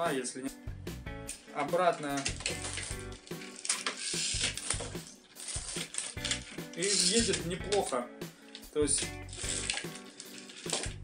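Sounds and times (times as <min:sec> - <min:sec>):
music: 0:00.0 - 0:11.0
toy car spring motor whirring: 0:02.2 - 0:07.5, 0:09.0 - 0:11.0.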